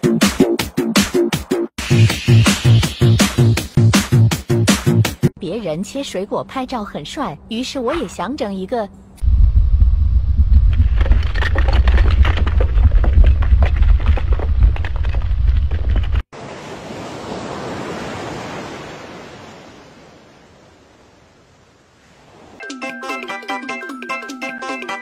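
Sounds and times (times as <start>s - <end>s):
wind buffeting microphone: 9.2s - 16.2s.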